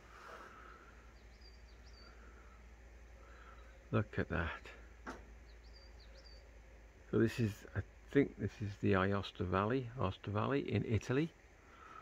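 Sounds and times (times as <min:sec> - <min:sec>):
small bird chirping: 0:00.8 - 0:03.9, 0:05.3 - 0:06.7.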